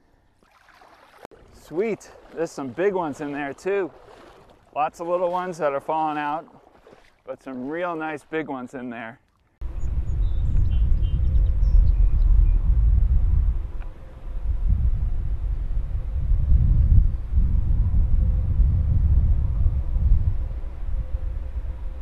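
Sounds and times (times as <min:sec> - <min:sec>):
wind buffeting microphone: 0:09.6 - 0:22.0.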